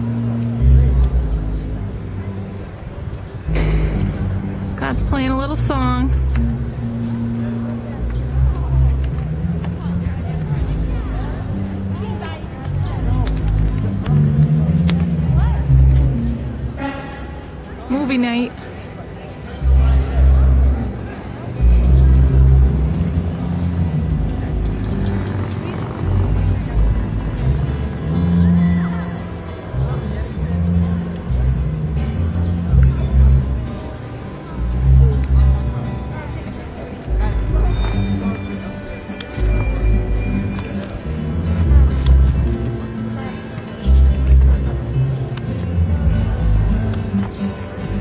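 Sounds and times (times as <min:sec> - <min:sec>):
amplified music with deep bass: 0:00.0 - 0:17.2, 0:19.5 - 0:48.0
acoustic guitar: 0:00.0 - 0:48.0.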